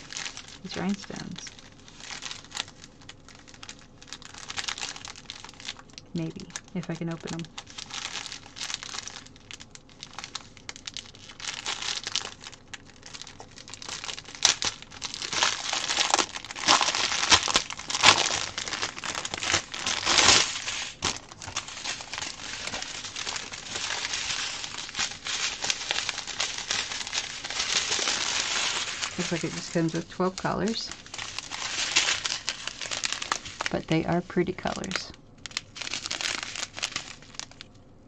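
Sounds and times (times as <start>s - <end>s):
plastic packets crinkling: 0.0s - 37.8s.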